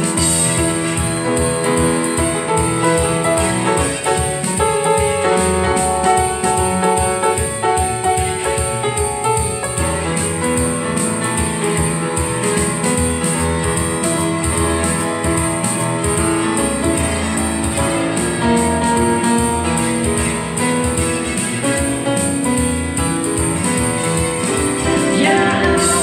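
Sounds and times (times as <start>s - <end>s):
slow piano ballad: 0.0s - 26.0s.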